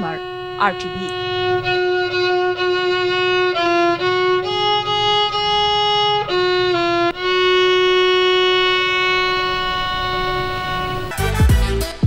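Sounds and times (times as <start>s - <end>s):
violin long bowed note: 0.0s - 11.4s.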